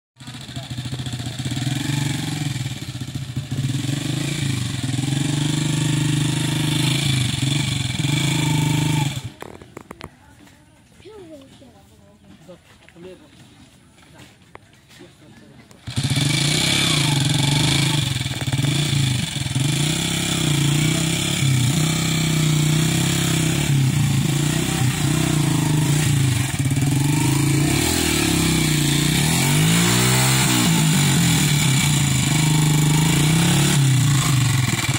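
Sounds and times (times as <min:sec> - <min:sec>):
motorcycle engine revving unevenly: 0:00.2 - 0:10.2, 0:15.6 - 0:34.9.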